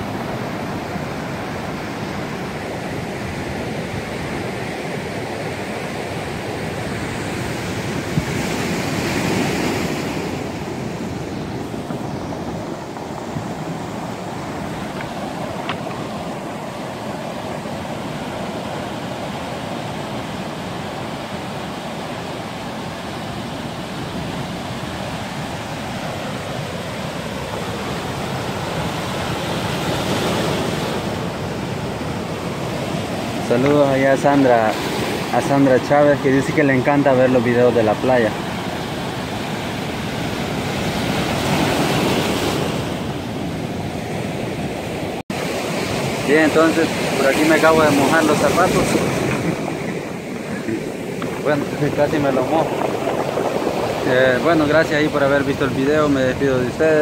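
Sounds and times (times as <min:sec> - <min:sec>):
surf washing over cobbles: 0:46.1 - 0:57.0.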